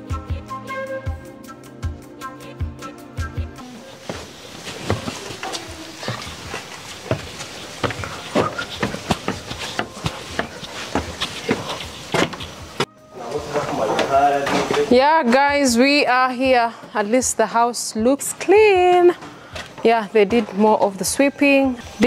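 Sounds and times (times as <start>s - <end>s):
noisy background: 3.5s - 22.0s
footsteps of person walking: 3.8s - 12.9s, 18.6s - 20.9s.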